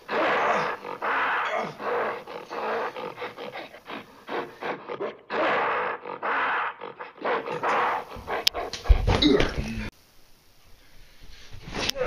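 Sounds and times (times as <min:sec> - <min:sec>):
animal-like growls and snarls: 0:00.0 - 0:09.9.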